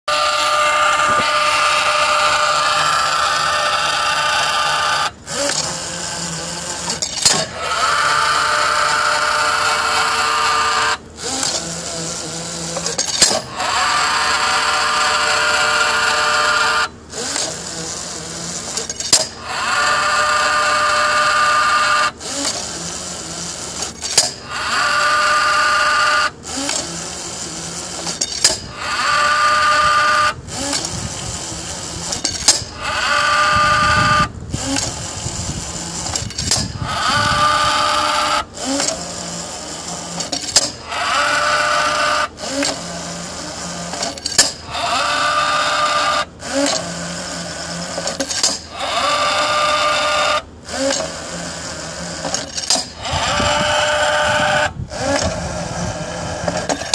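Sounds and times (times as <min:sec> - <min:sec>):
electric gear motors whining: 0:00.1 - 0:56.9.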